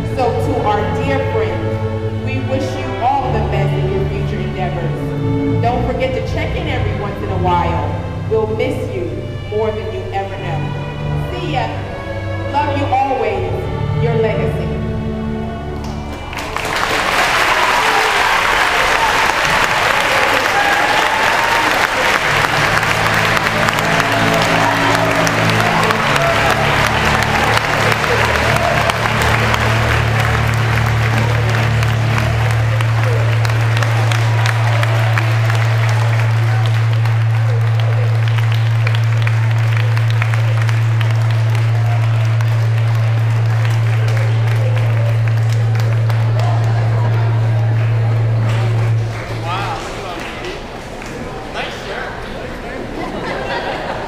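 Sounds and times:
audience applauding and cheering: 15.4s - 54.0s.

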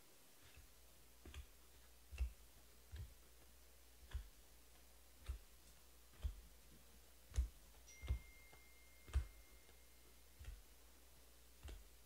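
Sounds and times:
faint thin high tone: 7.9s - 10.3s.

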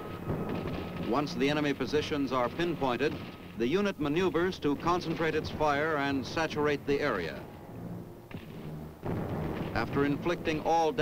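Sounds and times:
gunfire with rumbling echo: 0.0s - 11.0s.

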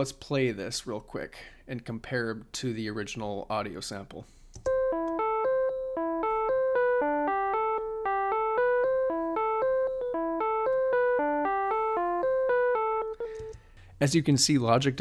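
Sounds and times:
electric piano melody: 4.6s - 13.7s.

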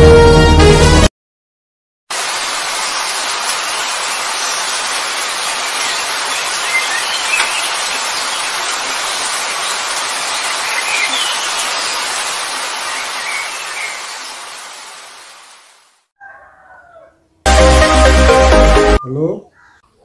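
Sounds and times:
rain hiss: 2.1s - 16.1s
rooster crowing: 16.2s - 17.4s.

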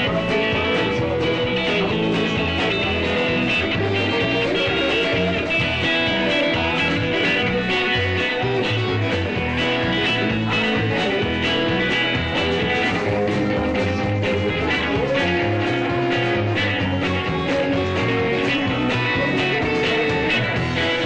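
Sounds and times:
rock band playing: 0.0s - 21.0s.

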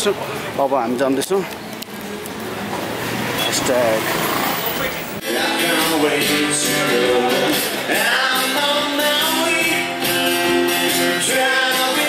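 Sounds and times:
vehicle passing on road: 1.6s - 6.4s
voices: 3.3s - 8.8s.

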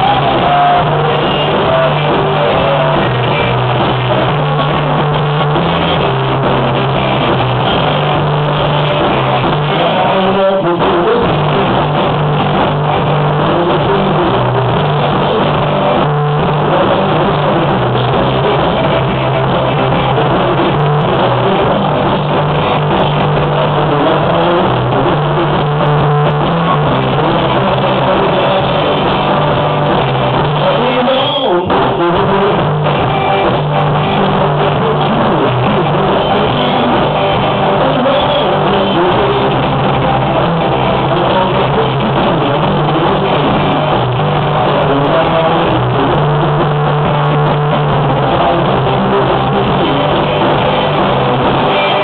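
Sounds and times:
live rock band playing: 0.0s - 52.0s
walking bass notes: 0.0s - 52.0s.

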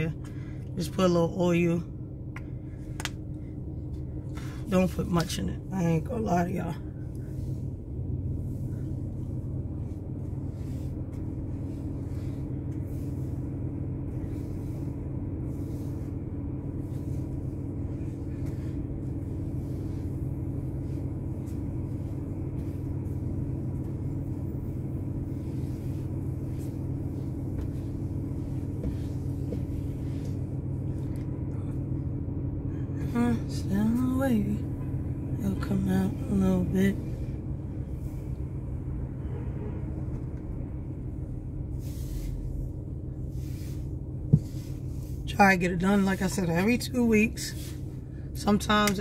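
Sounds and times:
vehicle engine idling: 0.0s - 49.0s.

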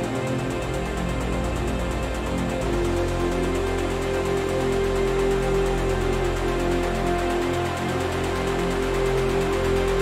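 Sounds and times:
melodic techno music: 0.0s - 10.0s.

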